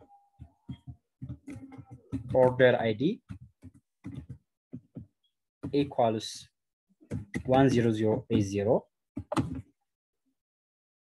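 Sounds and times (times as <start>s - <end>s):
man speaking: 2.3s - 3.2s, 7.5s - 8.8s.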